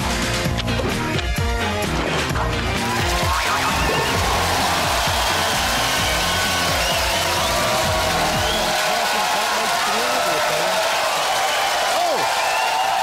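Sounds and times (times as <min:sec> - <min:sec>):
upbeat theme music: 0:00.0 - 0:13.0
audience cheering and applause: 0:02.5 - 0:13.0.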